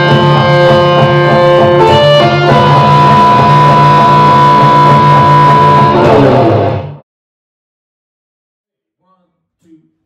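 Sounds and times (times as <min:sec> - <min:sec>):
electric guitar blues music: 0:00.0 - 0:07.0.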